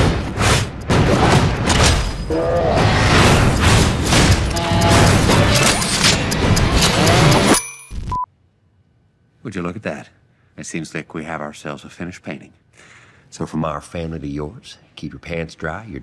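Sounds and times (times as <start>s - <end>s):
trailer music with booms: 0.0s - 8.1s.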